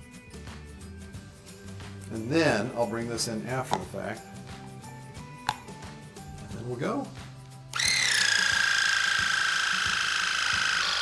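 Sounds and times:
electric pump high whine: 7.7s - 11.0s.

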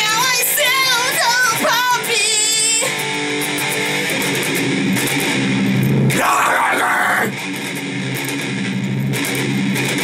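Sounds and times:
electric guitar playing: 0.0s - 10.0s.

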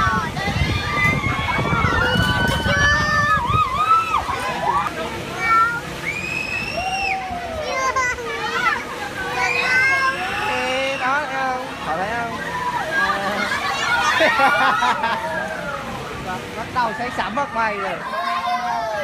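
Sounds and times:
riders shouting and chattering: 0.0s - 19.0s.

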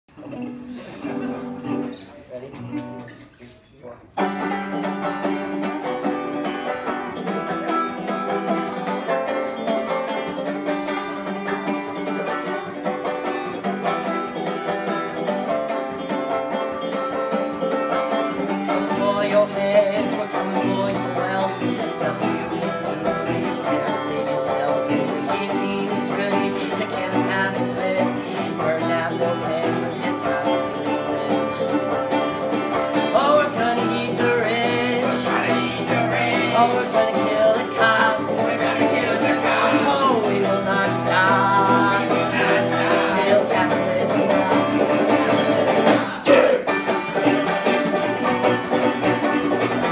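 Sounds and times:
folk punk on banjo and guitar: 0.0s - 49.9s.

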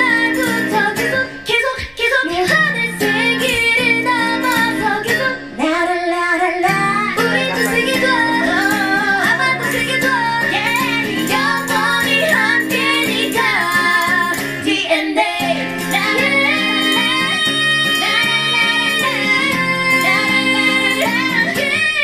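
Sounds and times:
acoustic guitar: 0.0s - 22.0s
woman singing: 0.0s - 22.0s.

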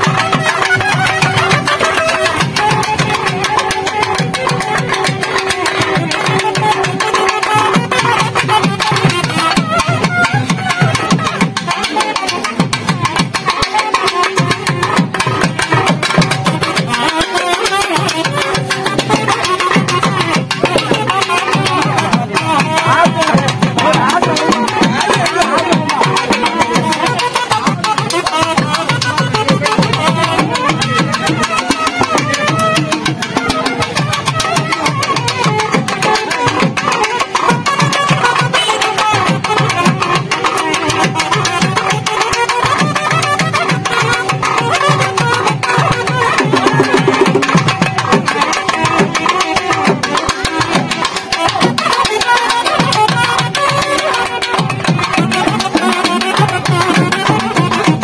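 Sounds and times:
fast drum strokes: 0.0s - 58.0s
reed pipe melody: 0.0s - 58.0s
low pitch-bending drum beats: 45.9s - 50.0s.

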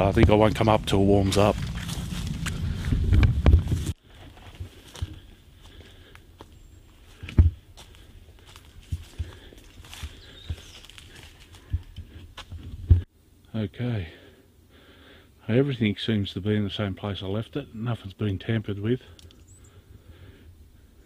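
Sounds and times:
loud low rumble: 0.0s - 4.0s
footsteps on dry leaf litter: 0.0s - 12.7s.

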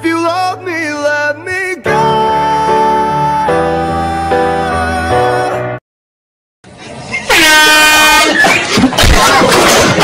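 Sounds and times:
air horn blast: 7.3s - 8.4s.

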